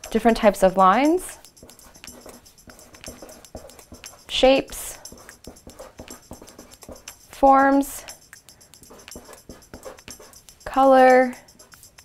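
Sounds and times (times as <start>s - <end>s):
marker scratching on paper: 0.0s - 12.0s
faint marker squeaks: 1.4s - 7.4s, 8.8s - 12.0s.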